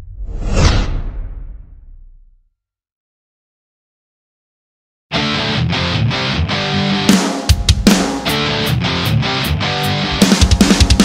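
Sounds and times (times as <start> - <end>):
low rumble: 0.0 - 2.5
whoosh: 0.0 - 2.5.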